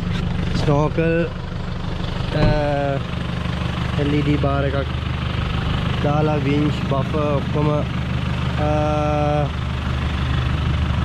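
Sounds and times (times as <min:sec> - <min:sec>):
pickup engine idling: 0:00.0 - 0:11.0.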